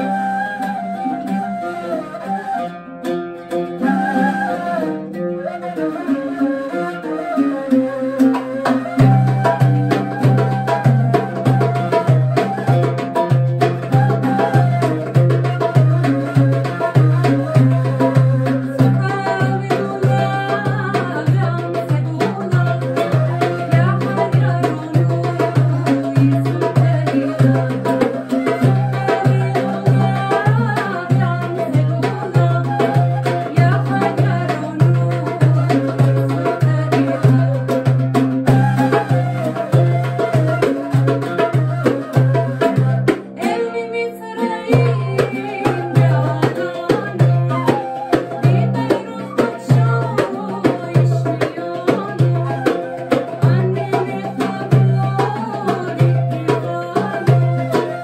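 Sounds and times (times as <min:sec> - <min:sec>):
woman singing: 0:00.0 - 0:02.7, 0:03.7 - 0:58.0
oud: 0:00.0 - 0:58.0
wooden flute: 0:00.0 - 0:58.0
goblet drum beat: 0:08.3 - 0:43.4, 0:44.7 - 0:56.5.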